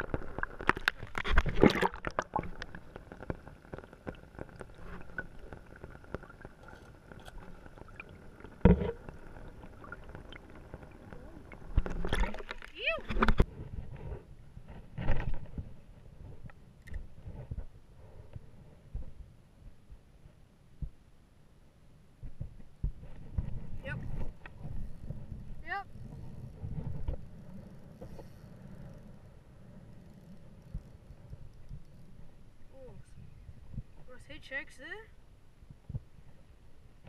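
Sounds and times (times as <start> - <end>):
water splashing: 0.0 - 13.4
muffled water sloshing: 0.0 - 17.7.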